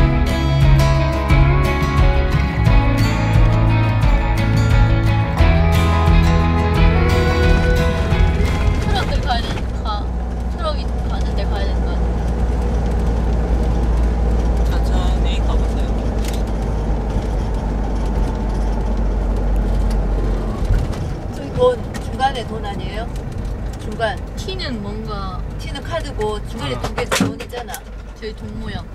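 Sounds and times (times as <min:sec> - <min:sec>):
bus engine drone: 0:00.0 - 0:28.9
road noise: 0:00.0 - 0:28.9.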